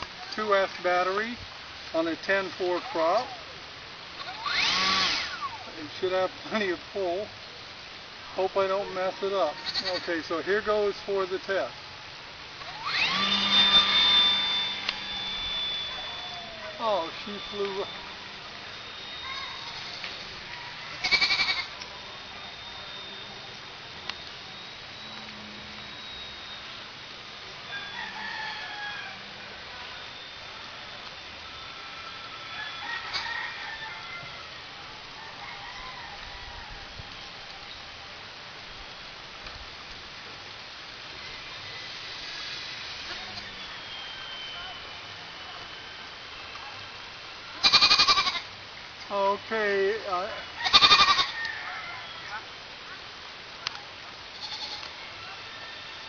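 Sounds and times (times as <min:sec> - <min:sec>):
faint pitched sounds: 0:00.0 - 0:56.0
outdoor hiss: 0:00.0 - 0:56.0
model airplane motor whine: 0:04.1 - 0:07.3, 0:08.5 - 0:35.4, 0:39.3 - 0:48.5.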